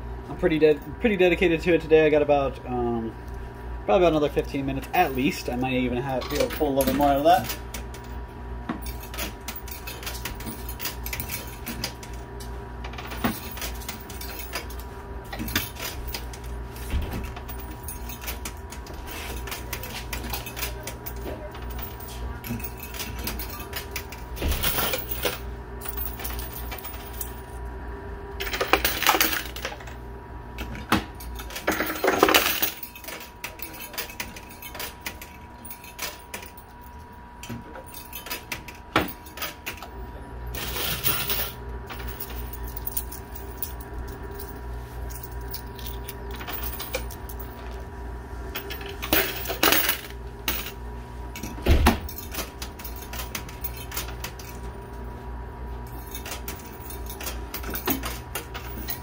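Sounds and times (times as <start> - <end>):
steady machine hum: 0.0 - 59.0
coins clinking and clicking: 8.8 - 12.2, 12.9 - 27.6, 28.4 - 30.0, 31.2 - 36.7, 40.6 - 47.8, 48.6 - 50.8, 51.4 - 55.0, 55.9 - 59.0
coins clattering: 12.9 - 27.6, 28.4 - 30.0, 31.2 - 36.7, 40.6 - 47.8, 48.6 - 50.8, 51.4 - 55.0, 55.9 - 59.0.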